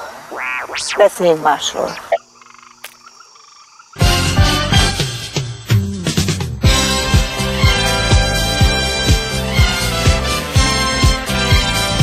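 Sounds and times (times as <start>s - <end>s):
swamp ambience: 0.0s - 4.2s
frog croaking: 0.1s - 4.0s.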